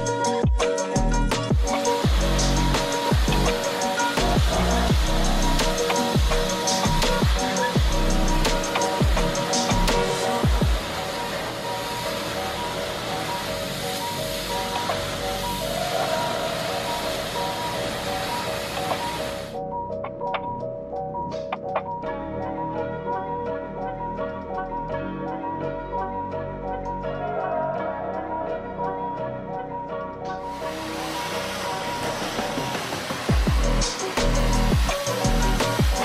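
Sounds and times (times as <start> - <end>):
pressure washer jet hissing on tiles: 0.0 - 19.6, 30.5 - 36.0
electronic music with bass hits: 0.0 - 27.9, 29.4 - 36.0.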